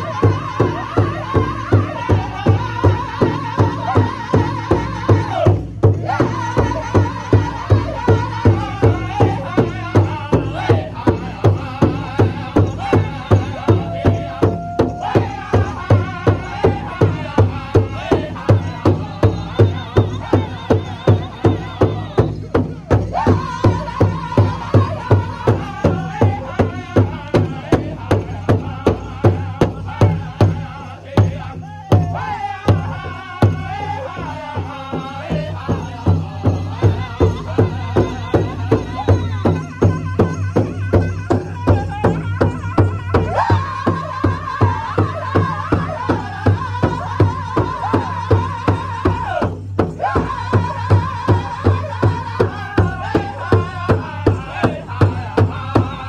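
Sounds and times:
large drum steady beat: 0.0 - 56.0
men singing high-pitched: 0.0 - 56.0.

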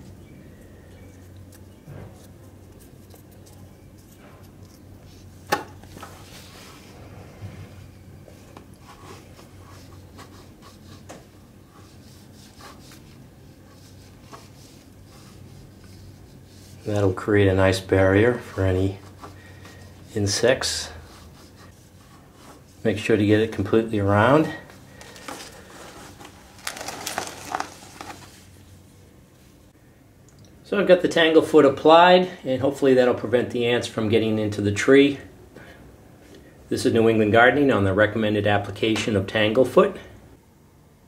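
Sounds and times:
wooden stick rubbing and scraping: 1.2 - 17.2, 18.4 - 23.4.

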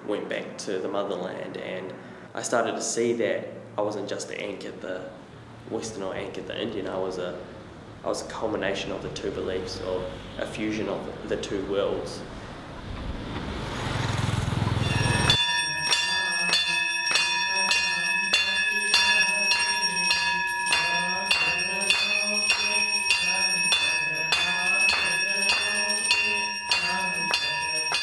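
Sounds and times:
street noise: 4.4 - 28.0
temple bell ringing: 14.8 - 28.0.

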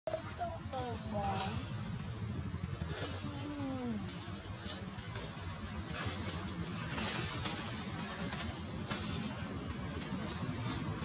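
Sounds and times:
steady low rumble: 0.1 - 11.0.

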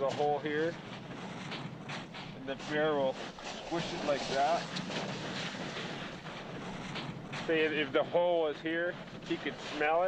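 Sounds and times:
hands scraping snow: 2.3 - 8.6.

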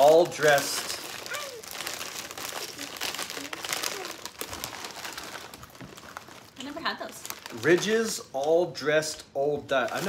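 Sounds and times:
plastic bag crinkling: 0.0 - 8.8, 9.7 - 10.0.

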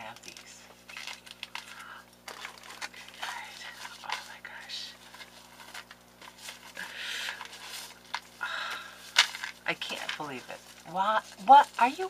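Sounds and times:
woman whispering: 3.2 - 5.0.

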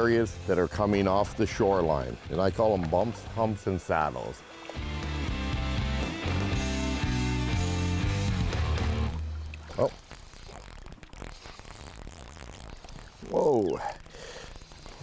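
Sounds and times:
music with stepping bass line: 4.8 - 9.4
fishing reel ticking: 8.0 - 15.0.

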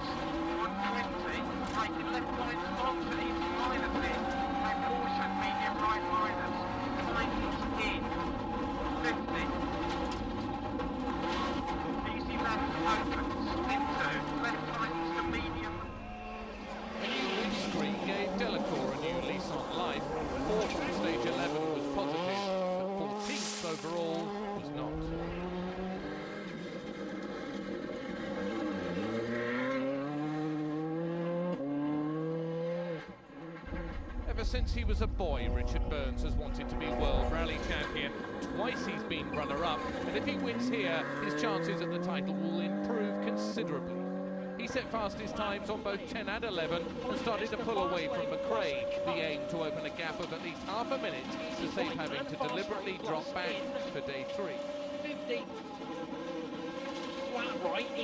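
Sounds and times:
rally car engine at high revs: 0.0 - 34.7, 35.6 - 58.0
rally car engine revving outside: 0.0 - 58.0.

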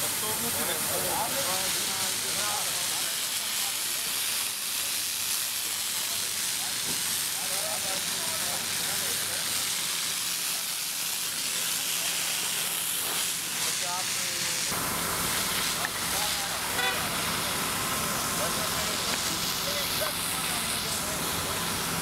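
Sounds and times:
fire hose spraying water: 0.0 - 22.0
vehicle engine humming: 14.7 - 22.0
faint voices: 15.6 - 22.0.

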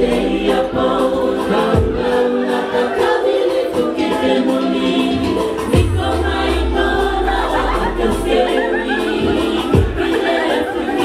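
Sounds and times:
women singing in harmony: 0.0 - 11.0
band playing steady beat: 3.4 - 11.0.

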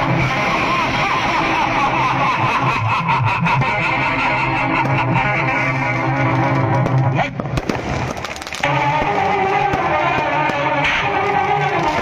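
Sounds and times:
festival crowd din: 0.0 - 12.0
firecracker crackles: 4.8 - 12.0
fireworks: 4.8 - 12.0.

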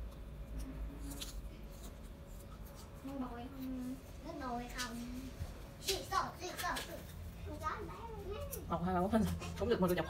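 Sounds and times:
child chewing apple: 0.0 - 10.0.

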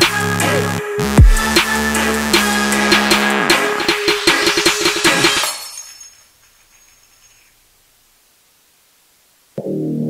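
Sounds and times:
electronic trap beat: 0.0 - 5.4.

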